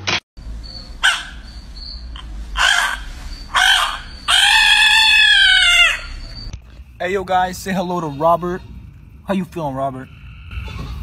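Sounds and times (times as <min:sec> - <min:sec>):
frog distress screams: 0:01.0 - 0:01.5, 0:02.6 - 0:06.4.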